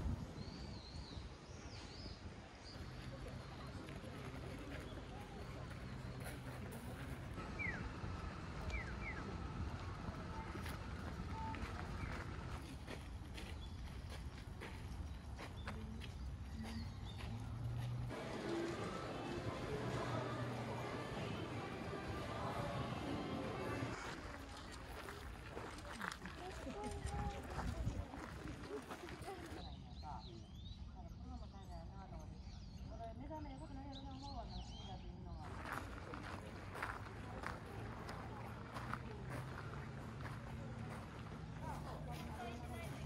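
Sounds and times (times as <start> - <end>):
people chattering: 1.8 - 32.2, 33.0 - 43.0
footsteps on gravel: 9.8 - 29.6, 35.4 - 43.0.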